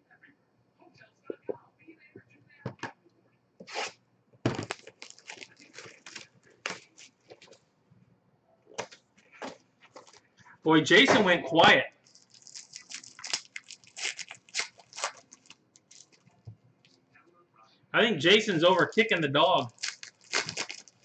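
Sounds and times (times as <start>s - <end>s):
cardboard tearing and rustling: 4.5s - 7.1s, 12.1s - 16.2s, 19.6s - 21.0s.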